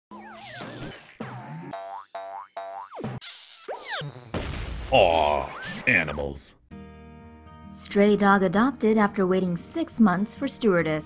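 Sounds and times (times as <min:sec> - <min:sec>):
cartoon boings: 0:00.1 - 0:04.5.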